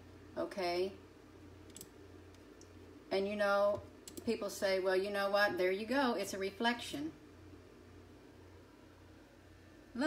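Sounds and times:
steady low hum: 0.0 - 10.0
faint computer mouse clicks: 1.7 - 2.7, 3.7 - 4.3.

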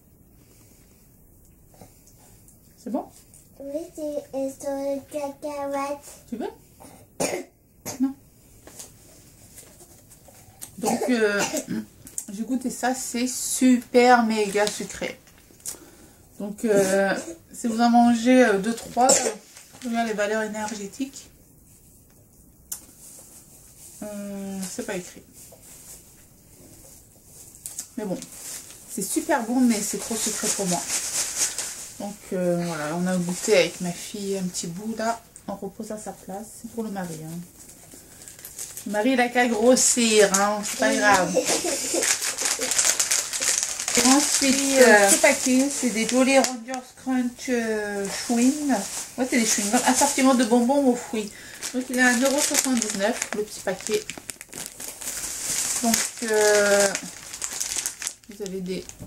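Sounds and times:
plastic bag crinkling: 13.2 - 15.9, 18.2 - 21.2, 26.7 - 35.2, 36.7 - 59.0
plastic candy wrapper crackling: 14.3 - 15.8, 37.9 - 47.0, 48.0 - 59.0.

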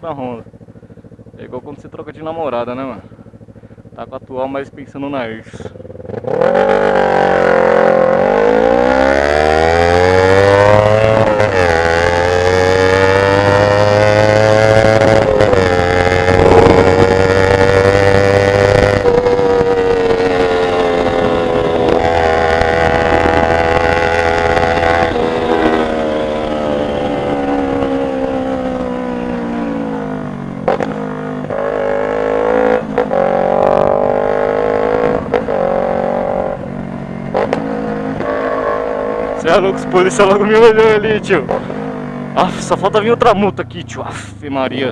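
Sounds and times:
motorcycle engine accelerating: 0.0 - 44.9.

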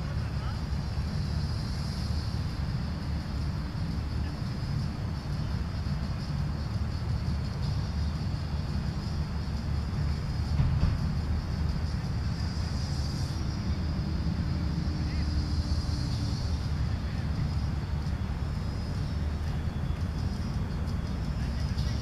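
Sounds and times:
faint distant voices: 0.0 - 22.0
low outdoor rumble: 0.0 - 22.0.

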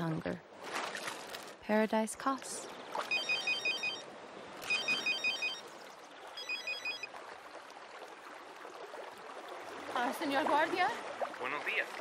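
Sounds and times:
phone ringing with electronic beeps: 3.1 - 5.8, 6.4 - 7.1.

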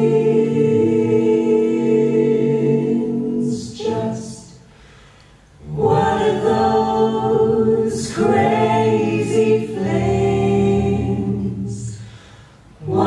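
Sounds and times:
a cappella choir singing harmony: 0.0 - 13.0.

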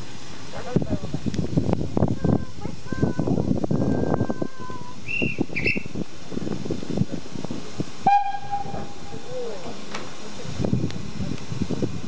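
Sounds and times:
high whistle blasts: 5.0 - 5.9, 8.1 - 8.9
steam locomotive whistle: 8.0 - 9.2
train knocks: 8.0 - 10.2.

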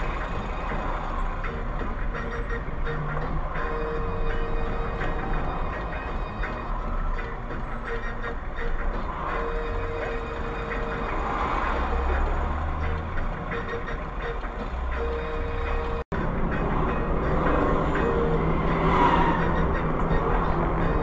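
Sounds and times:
car engine and road rumble: 0.0 - 21.0.

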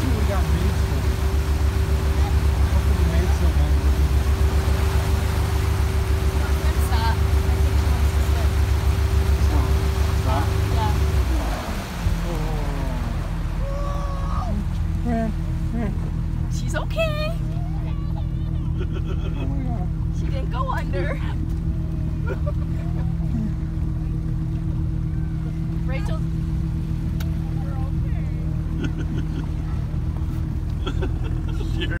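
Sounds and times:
motorboat engine running: 0.0 - 32.0
wind and water noise: 0.0 - 32.0.

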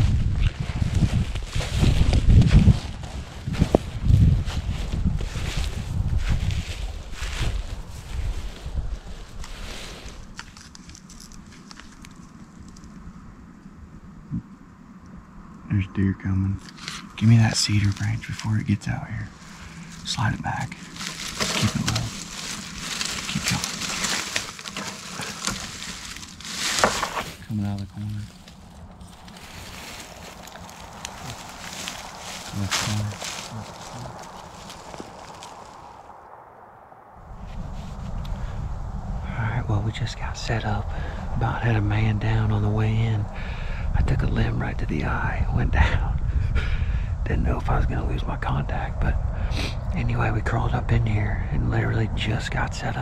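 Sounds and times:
footsteps in snow: 0.0 - 12.1, 19.2 - 36.1
brush rustling: 0.0 - 13.0, 16.6 - 36.1
wind buffeting microphone: 0.0 - 53.0.

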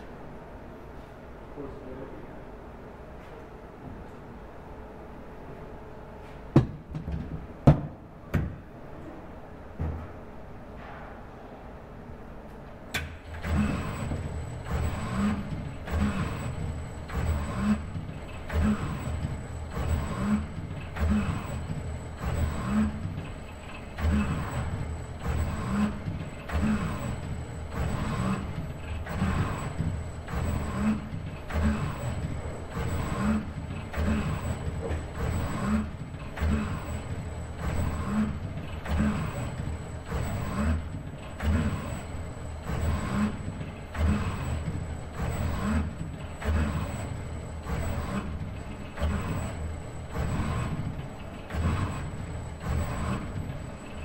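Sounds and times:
robot arm servo motors whirring: 13.3 - 54.0.

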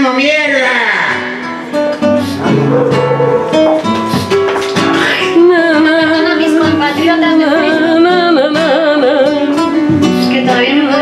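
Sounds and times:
flamenco guitar playing: 0.0 - 11.0.

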